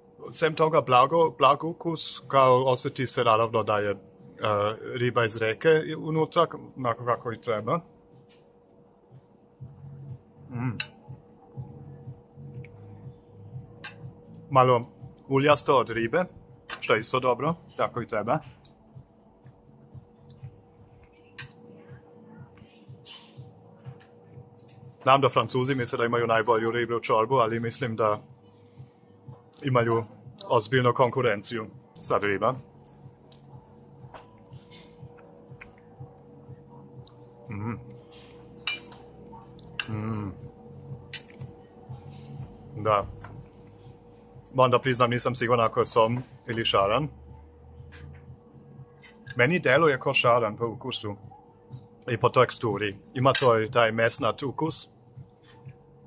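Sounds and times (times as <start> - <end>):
faint steady hum: 0.0 - 56.0
person humming: 10.4 - 10.9, 37.4 - 38.1, 39.8 - 40.5
cutlery clinking against dish: 38.6 - 39.1, 41.1 - 41.4, 53.3 - 53.6
spoon clicking against bowl: 41.1 - 41.4.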